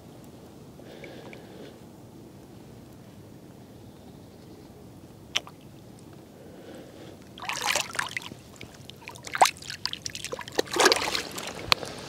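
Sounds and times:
water splashing and sloshing: 0:07.4 - 0:12.0.

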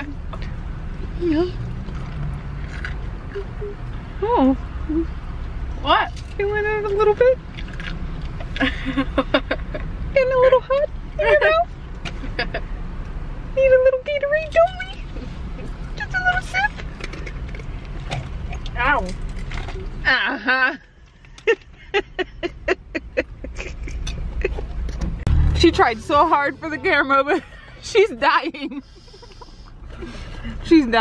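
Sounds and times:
car engine and road noise: 0:00.0 - 0:31.0.

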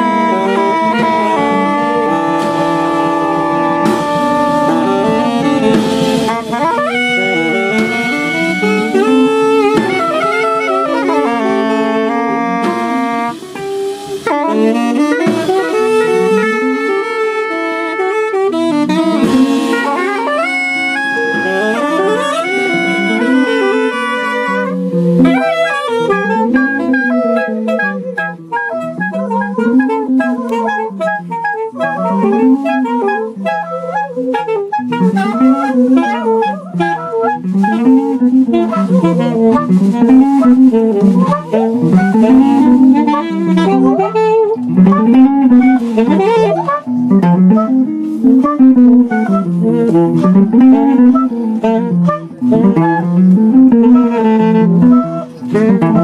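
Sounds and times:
drums: 0:00.0 - 0:56.0
electric guitar: 0:00.0 - 0:56.0
saxophones and clarinet: 0:00.0 - 0:56.0.

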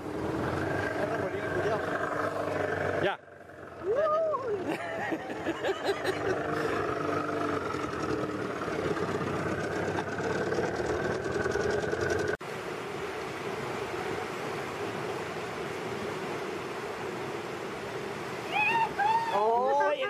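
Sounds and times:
small boat motor running: 0:00.0 - 0:12.4
river rapids rushing: 0:12.5 - 0:20.0.

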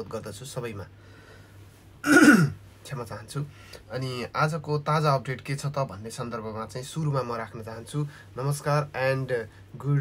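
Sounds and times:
man clearing his throat: 0:02.0 - 0:02.6.

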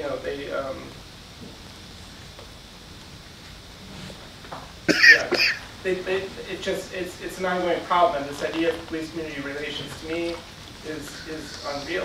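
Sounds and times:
man coughing: 0:04.9 - 0:05.7.

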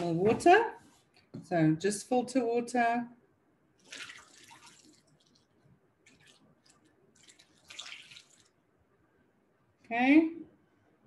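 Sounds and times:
water trickling through a funnel: 0:03.8 - 0:08.6.

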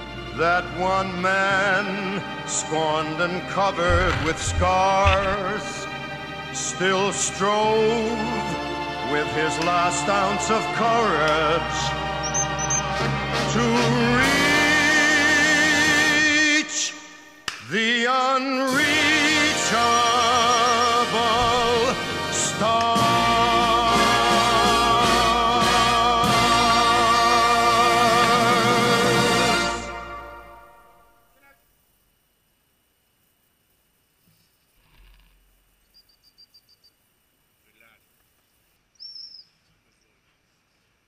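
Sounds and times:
operatic solo singing: 0:00.0 - 0:31.2
woodland birds chirping: 0:12.2 - 0:13.0, 0:19.7 - 0:21.9, 0:34.2 - 0:41.0.

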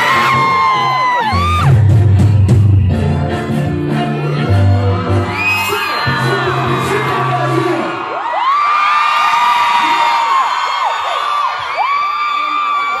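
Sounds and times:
pop song backing track: 0:00.0 - 0:08.1
crowd screaming and cheering: 0:00.0 - 0:13.0.

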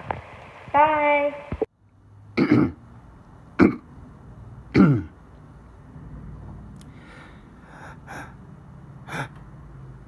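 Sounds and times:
person clearing throat: 0:02.4 - 0:02.8, 0:03.6 - 0:03.9, 0:04.7 - 0:05.2.

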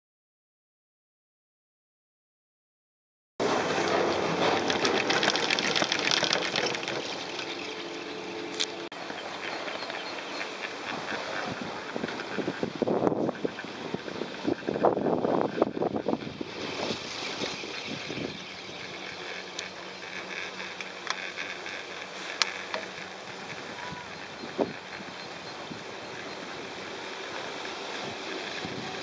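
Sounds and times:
chairlift running noise: 0:03.4 - 0:29.0
wind buffeting microphone: 0:03.4 - 0:29.0.

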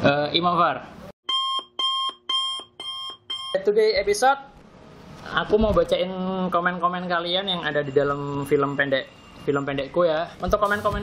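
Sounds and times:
electronic alarm beeping: 0:01.2 - 0:03.8, 0:07.2 - 0:11.0.

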